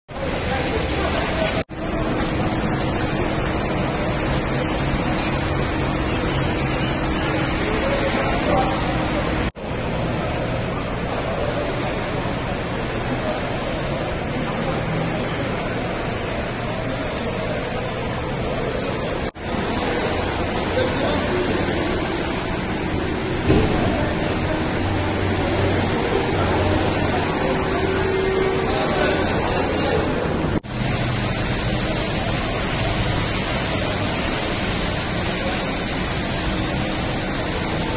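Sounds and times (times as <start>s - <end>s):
road tunnel droning hum: 0.1s - 37.9s.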